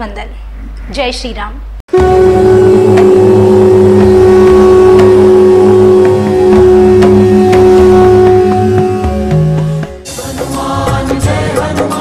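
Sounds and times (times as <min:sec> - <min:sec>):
conch shell blowing: 0:01.9 - 0:10.0
pulsing low drone: 0:01.9 - 0:10.0
devotional music: 0:01.9 - 0:12.0.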